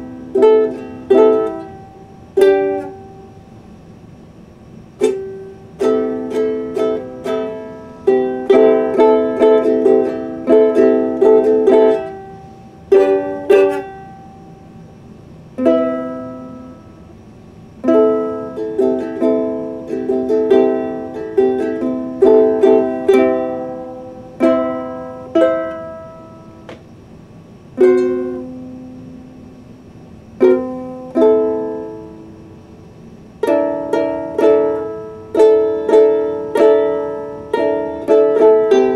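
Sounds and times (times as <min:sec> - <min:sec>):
ukulele strumming chords: 0:00.0 - 0:03.6, 0:04.9 - 0:14.9, 0:15.6 - 0:26.9, 0:27.5 - 0:29.7, 0:30.4 - 0:38.9.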